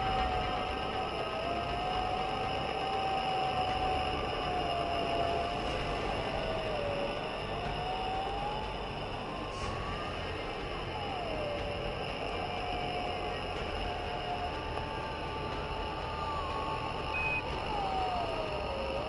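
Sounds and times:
eerie electronic drone: 0.0s - 19.0s.

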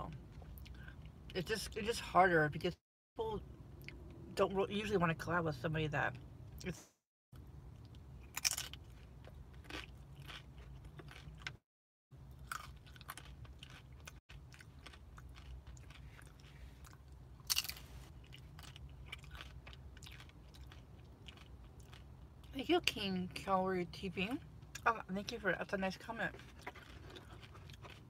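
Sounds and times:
tortilla chip crunching: 7.8s - 11.6s, 12.2s - 22.5s, 26.3s - 28.0s.

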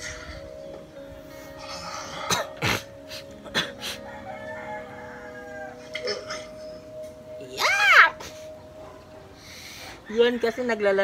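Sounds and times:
music with held tones: 0.0s - 11.0s.

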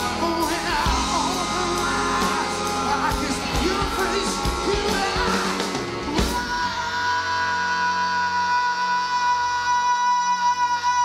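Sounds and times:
blues-rock band sustained chord: 0.0s - 9.3s.

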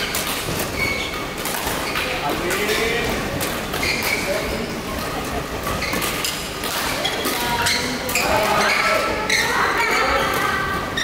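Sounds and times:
rackets hitting shuttlecocks: 0.0s - 4.4s, 5.1s - 9.0s
shoes squeaking on floor: 0.0s - 11.0s
voices echoing in a hall: 1.0s - 11.0s.

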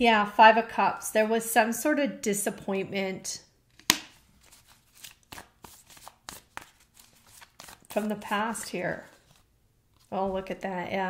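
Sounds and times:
cards being shuffled: 3.7s - 10.4s.

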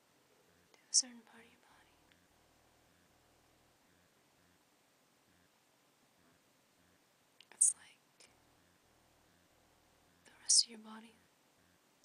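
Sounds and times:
person whispering: 0.7s - 2.1s, 7.4s - 8.4s, 10.2s - 11.2s.

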